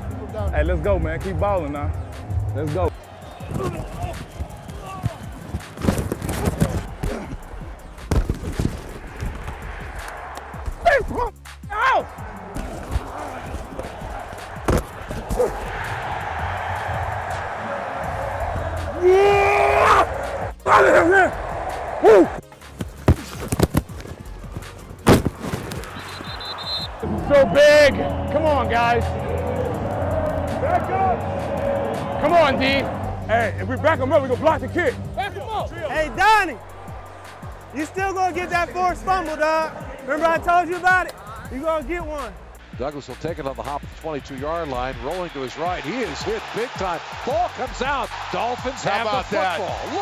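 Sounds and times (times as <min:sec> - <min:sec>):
crowd noise: 0:00.0 - 0:11.2, 0:12.0 - 0:50.0
background music: 0:00.0 - 0:50.0
pads and helmets colliding: 0:03.4 - 0:09.7, 0:12.6 - 0:15.8, 0:22.7 - 0:26.3
men shouting: 0:09.6 - 0:22.4, 0:26.9 - 0:41.5, 0:46.1 - 0:50.0.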